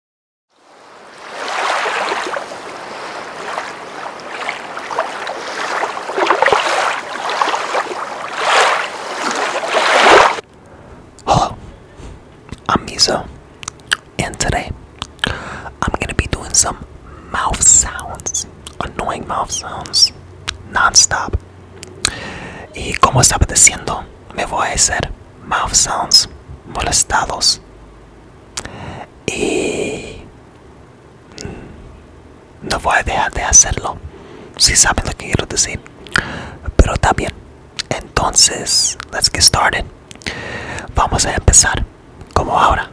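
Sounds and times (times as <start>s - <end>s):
soft whispering: 11.2s - 13.4s, 14.2s - 21.4s, 22.4s - 27.6s, 29.2s - 30.3s, 32.6s - 35.9s, 36.6s - 39.9s, 40.8s - 42.9s
wet mouth clicks and smacks: 12.5s - 12.7s, 13.6s - 14.1s, 15.0s - 15.4s, 18.0s - 18.8s, 19.8s - 20.6s, 21.8s - 22.2s, 35.8s - 36.3s, 40.1s - 40.9s.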